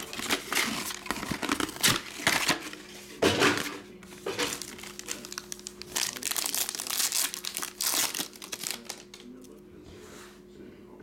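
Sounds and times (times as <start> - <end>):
foil wrapper crinkling and tearing: 0.0 - 2.8, 4.3 - 9.5.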